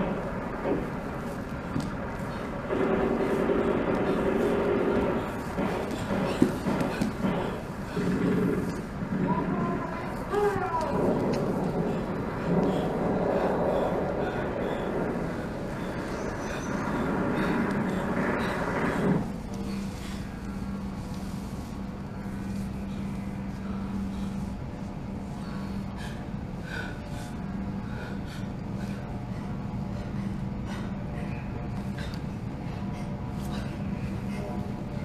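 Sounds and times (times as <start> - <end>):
dense rumbling noise: 0.0 - 35.0
steady low hum: 0.0 - 35.0.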